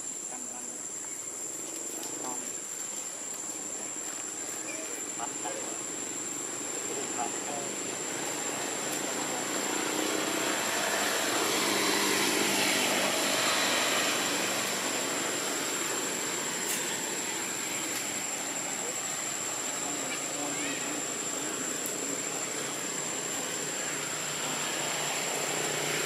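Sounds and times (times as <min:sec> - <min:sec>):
steady high-pitched whine: 0:00.0 - 0:26.0
distant engine passing: 0:05.0 - 0:26.0.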